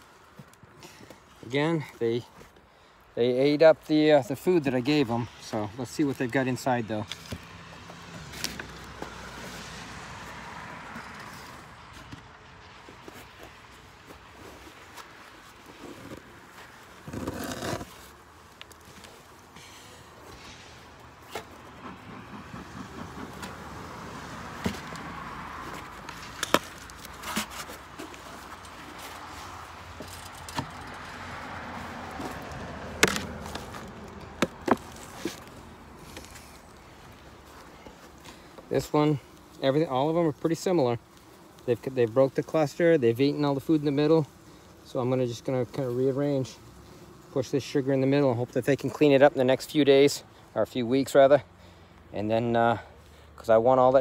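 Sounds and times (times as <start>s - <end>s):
wood scraping on wood: 12.8s - 47.4s.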